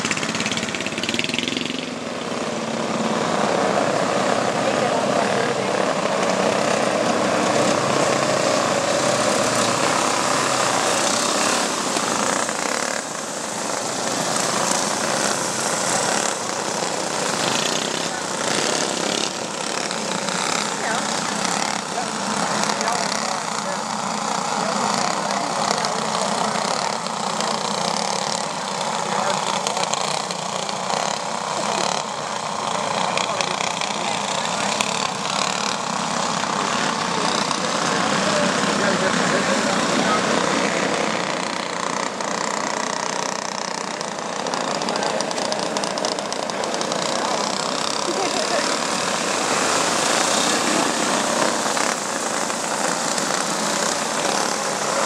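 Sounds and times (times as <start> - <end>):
racing kart engines running hard: 0.0 - 55.0.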